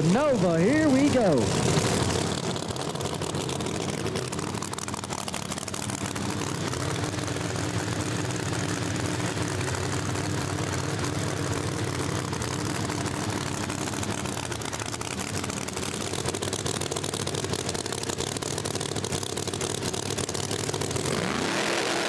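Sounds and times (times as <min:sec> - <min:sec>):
drag car engines droning: 0:00.0 - 0:22.0.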